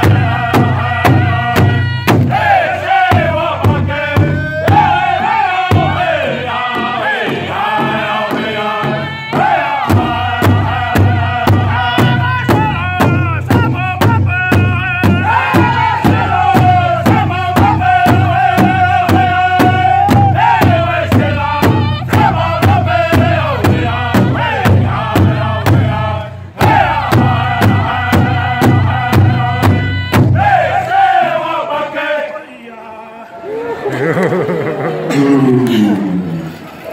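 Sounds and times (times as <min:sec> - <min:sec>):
large hand drum beat: 0:00.0 - 0:30.9
group singing in high strained style: 0:00.0 - 0:35.2.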